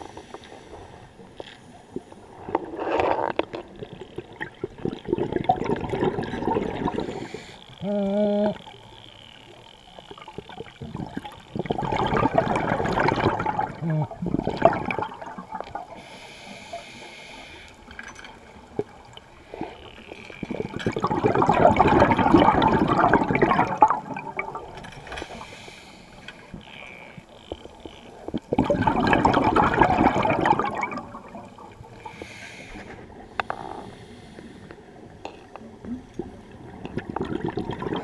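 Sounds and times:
underwater hiss: 0.0 - 1.1, 6.9 - 7.8, 15.9 - 18.0, 25.0 - 26.6, 31.8 - 35.1
air bubbling from regulator underwater: 3.7 - 8.6, 10.2 - 16.0, 20.0 - 24.8, 27.6 - 32.2, 36.2 - 38.0.

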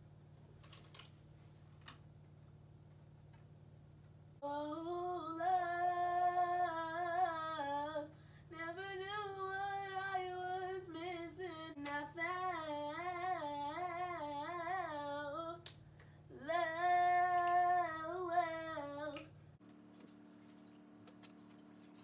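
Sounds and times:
girl singing unaccompanied: 4.4 - 15.7, 16.3 - 19.3.

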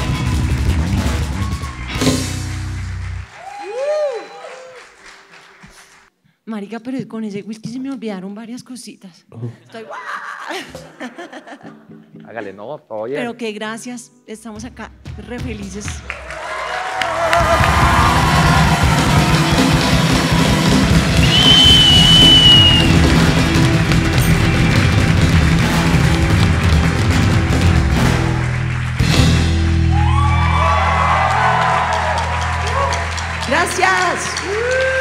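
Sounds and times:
live band playing: 0.0 - 3.4, 14.6 - 35.0
crowd whooping and cheering: 0.0 - 5.3, 16.0 - 27.0, 28.2 - 35.0
long whistle: 20.4 - 23.0.

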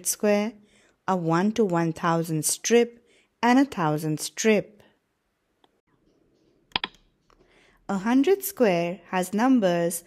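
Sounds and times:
sharp clicks: 6.7 - 7.1.

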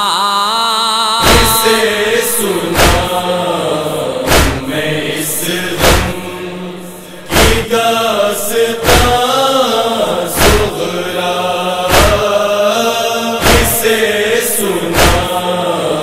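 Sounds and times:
voices chanting a lament: 0.0 - 16.0
rhythmic chest-beating thuds: 1.2 - 16.0.

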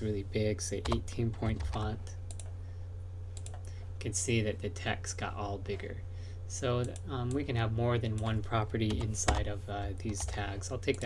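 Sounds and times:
low electrical hum: 0.0 - 11.0
computer mouse clicks: 1.6 - 2.5, 3.4 - 3.8.

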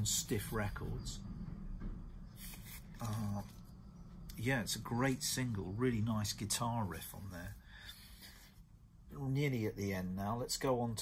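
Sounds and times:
vinyl record sleeve rustling: 2.3 - 3.7.

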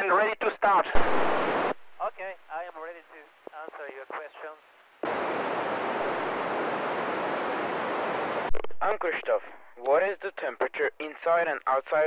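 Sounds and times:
radio static hiss: 0.0 - 12.0
person speaking: 8.7 - 12.0.

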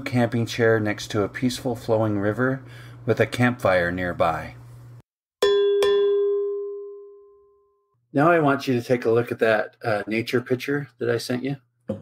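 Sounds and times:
bell-like chime: 5.4 - 7.8.

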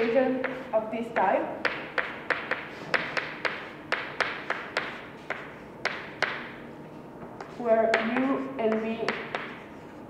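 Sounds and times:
chalk tapping on chalkboard: 0.0 - 6.5, 7.3 - 9.9.

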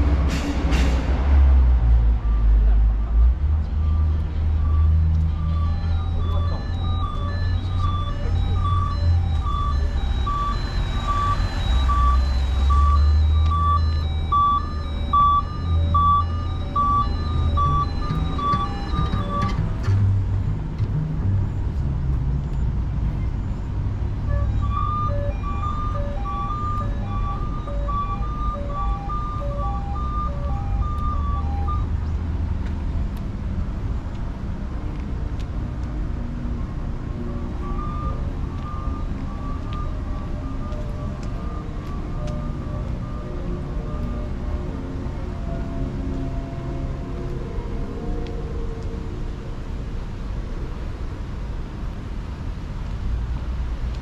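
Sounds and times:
low traffic rumble: 0.0 - 54.0
wind: 0.0 - 54.0
electronic beeping melody: 3.8 - 19.8, 24.2 - 32.0, 37.5 - 44.3.

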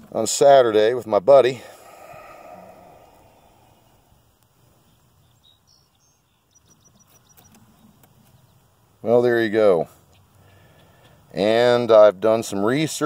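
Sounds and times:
soft hiss: 0.0 - 13.0.

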